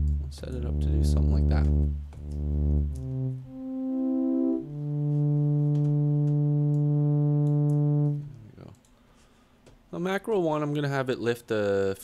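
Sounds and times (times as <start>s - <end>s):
synth pad sustained note: 0.0s - 8.6s.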